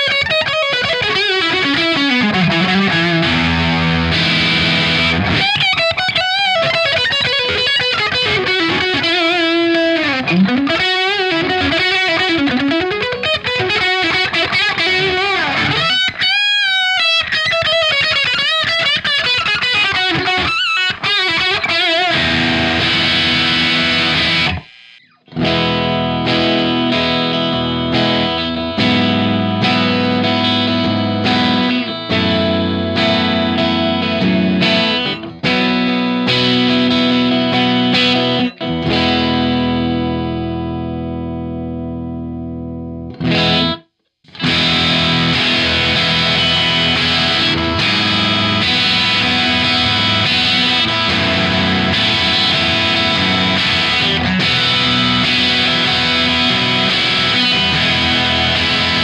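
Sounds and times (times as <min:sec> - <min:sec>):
distorted electric guitar lead: 0:00.0 - 0:59.0
guitar strumming ringing chords: 0:00.0 - 0:59.0.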